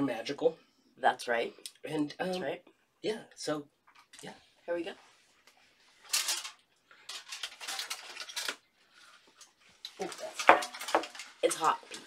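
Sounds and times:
dishes and utensils clattering: 10.3 - 11.4.

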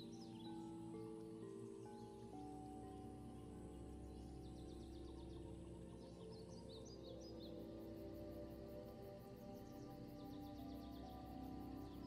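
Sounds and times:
soft ambient music: 0.0 - 12.0.

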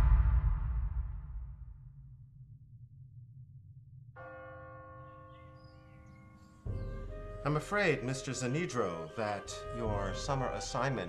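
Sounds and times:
low rumbling drone: 0.0 - 4.2.

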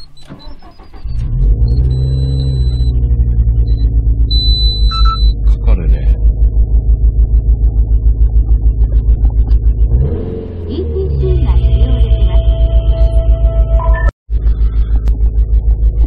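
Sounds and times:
high electronic beeps: 0.0 - 3.0, 3.6 - 5.8, 11.1 - 14.2
car engine starting and idling: 0.0 - 16.0.

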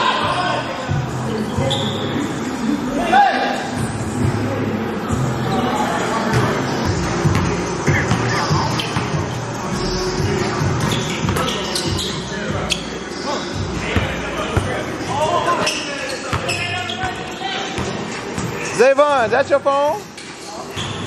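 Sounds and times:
voices: 0.0 - 21.0
basketballs bouncing on gym floor: 6.3 - 9.4, 13.9 - 14.8, 15.6 - 18.6.

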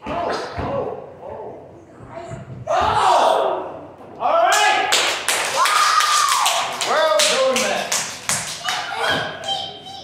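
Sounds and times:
children calling out: 8.6 - 10.0.

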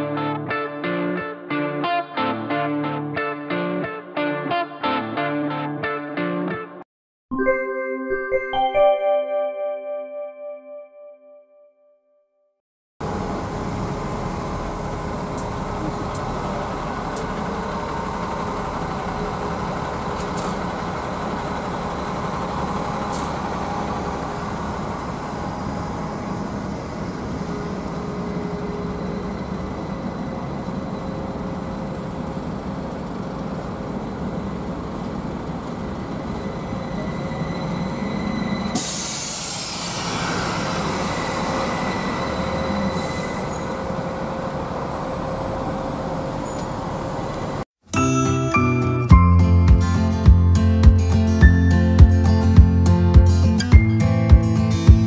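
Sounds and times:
trolleybus whining over rumble: 13.0 - 47.6
street traffic: 13.0 - 47.7
compressed air hiss: 38.8 - 41.4.

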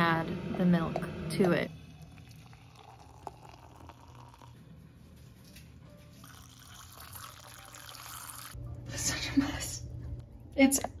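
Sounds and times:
liquid pouring into metal mug: 1.8 - 4.7, 6.2 - 8.6.

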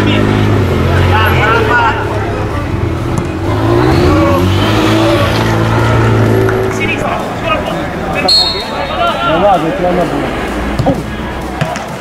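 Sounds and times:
shouted voices: 0.0 - 2.8, 3.4 - 12.0
vehicle engine drone: 0.0 - 12.0.

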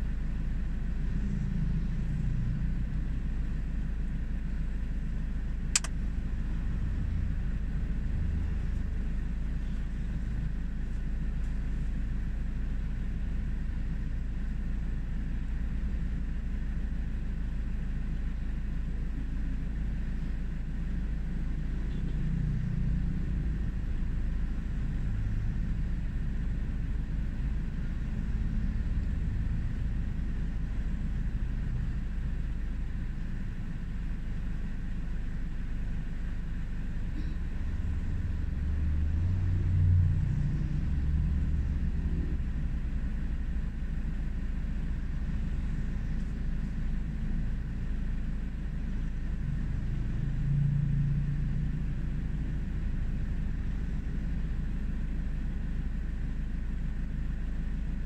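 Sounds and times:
road traffic rumbling: 0.0 - 58.0.

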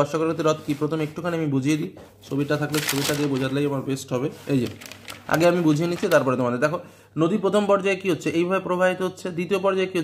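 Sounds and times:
man talking: 0.0 - 10.0
notebook page turning: 2.6 - 3.7, 4.5 - 6.4.

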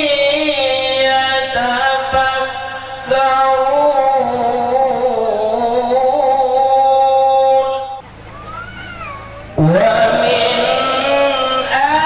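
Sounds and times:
man chanting through microphone: 0.0 - 8.0, 9.6 - 12.0.

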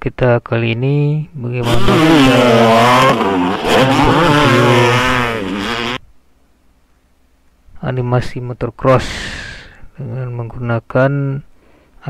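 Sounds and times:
dirt bike engine revving: 1.6 - 6.0.

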